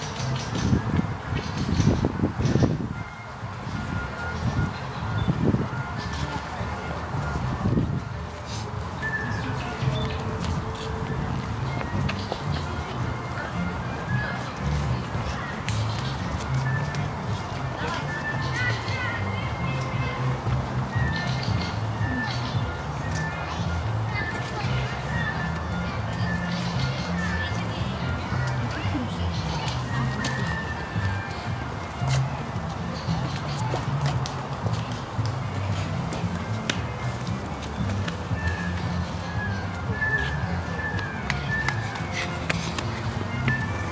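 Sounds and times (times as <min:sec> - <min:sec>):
crowd murmur: 0:00.0 - 0:43.9
distant music: 0:00.0 - 0:43.9
walking footsteps: 0:09.6 - 0:23.6, 0:25.4 - 0:43.9.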